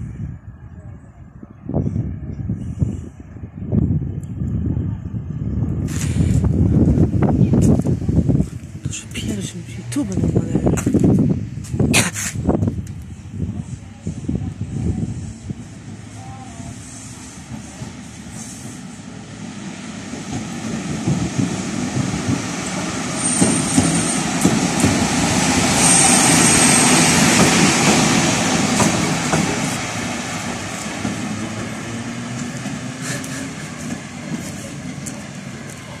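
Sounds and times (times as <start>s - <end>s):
electric locomotive passing: 0.0s - 36.0s.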